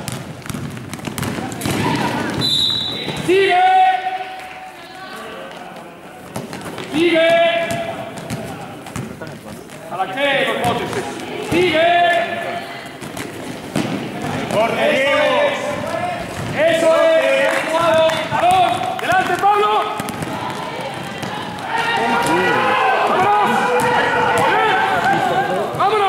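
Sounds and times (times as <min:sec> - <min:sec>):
basketball bouncing on court: 0:00.0 - 0:03.4, 0:06.3 - 0:09.8, 0:13.0 - 0:14.8, 0:15.7 - 0:16.9, 0:17.7 - 0:22.5, 0:23.2 - 0:26.0
players calling: 0:01.2 - 0:26.0.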